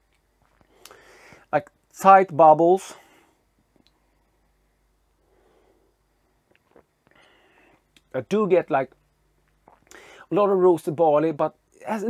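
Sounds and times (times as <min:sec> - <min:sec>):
faint breath: 0:00.6 - 0:01.5, 0:02.9 - 0:03.5, 0:05.2 - 0:06.1, 0:07.1 - 0:07.9, 0:09.9 - 0:10.3
soft mouth clicks sipping: 0:06.5 - 0:07.3.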